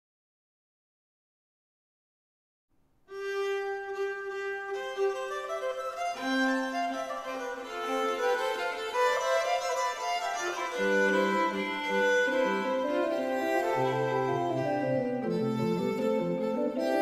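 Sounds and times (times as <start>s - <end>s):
viols and organ playing: 8.8s - 17.0s.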